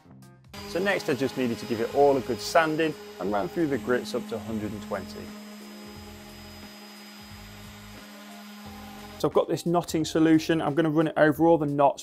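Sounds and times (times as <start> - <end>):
orbital sander running on wood: 0.6 - 9.3.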